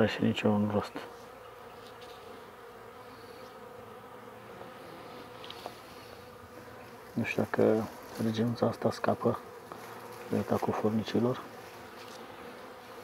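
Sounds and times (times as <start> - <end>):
bees humming: 0.0 - 13.0.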